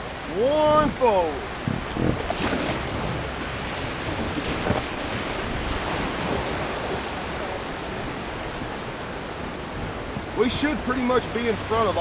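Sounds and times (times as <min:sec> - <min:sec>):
river water rushing: 0:00.0 - 0:12.0
wind buffeting microphone: 0:00.0 - 0:12.0.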